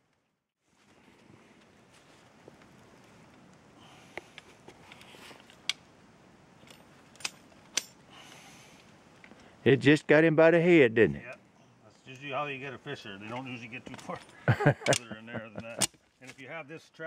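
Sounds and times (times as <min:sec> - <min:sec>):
quiet rustling: 0:00.1 - 0:10.0, 0:11.2 - 0:16.6.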